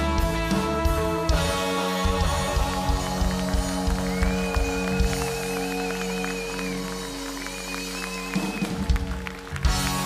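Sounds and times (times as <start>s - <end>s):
drums: 0.0s - 10.0s
rock band sustained chord: 0.0s - 10.0s.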